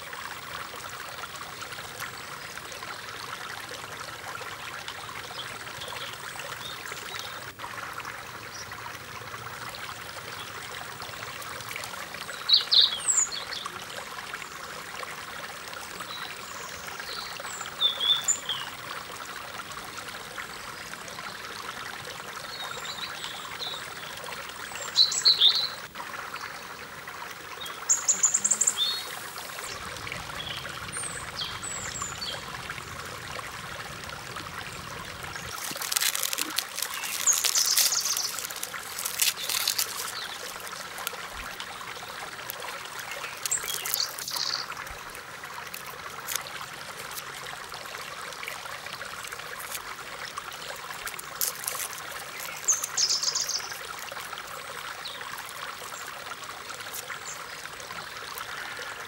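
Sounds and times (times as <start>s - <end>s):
forest stream flowing: 0.0s - 59.0s.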